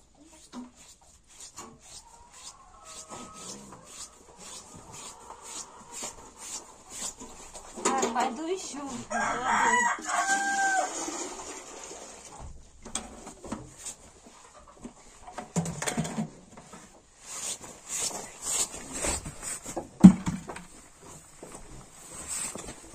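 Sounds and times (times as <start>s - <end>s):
rooster crowing: 9.1s - 11.3s
water poured into metal pail: 10.4s - 12.4s
buckets knocking: 20.0s - 20.6s
feet rustling in straw: 20.8s - 22.9s.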